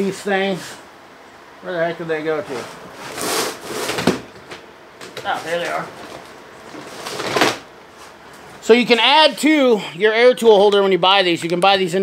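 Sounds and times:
items rustled by hand: 2.5 - 8.6.

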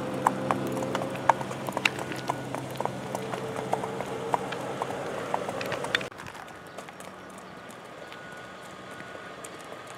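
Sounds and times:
horse hooves clopping on pavement: 0.0 - 9.9.

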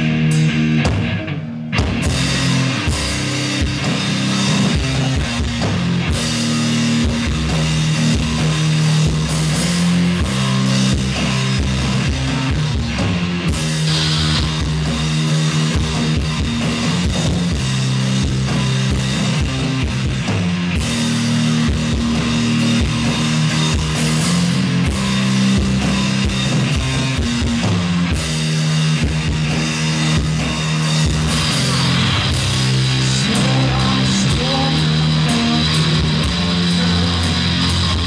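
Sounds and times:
drum kit: 0.0 - 38.0
electric guitars: 0.0 - 38.0.

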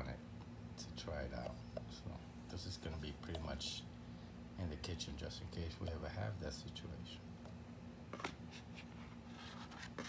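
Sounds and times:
metal scraping against cardboard: 8.2 - 10.0.

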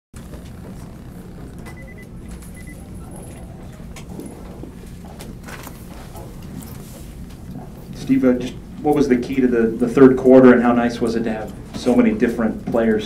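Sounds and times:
short high beeps: 1.7 - 2.9.

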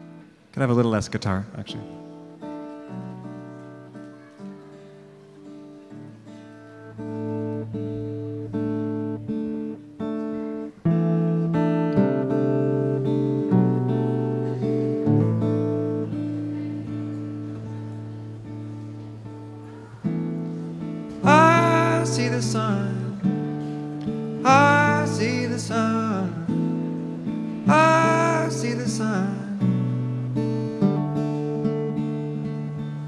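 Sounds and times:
acoustic guitar picking: 1.7 - 33.0.

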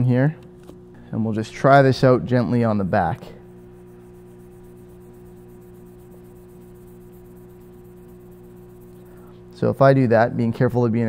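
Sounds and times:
workshop background drone: 0.0 - 11.0.

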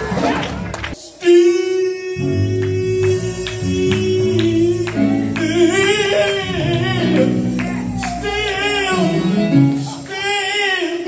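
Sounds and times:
gospel band with electric bass: 0.0 - 11.0
man singing with vibrato: 1.0 - 11.0.

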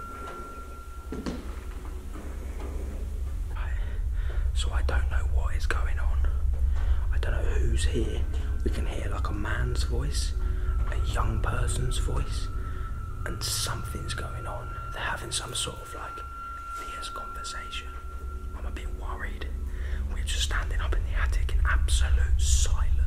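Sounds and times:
thin high tone: 0.0 - 22.9
steady low hum: 0.0 - 23.0
man whispering: 3.5 - 23.0.

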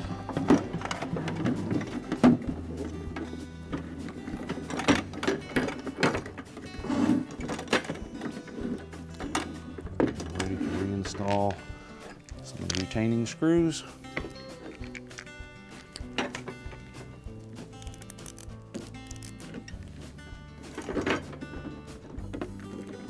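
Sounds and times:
soft background music: 0.0 - 23.0
plastic parts clicking and knocking: 0.3 - 6.7, 7.3 - 13.3, 14.2 - 19.8.

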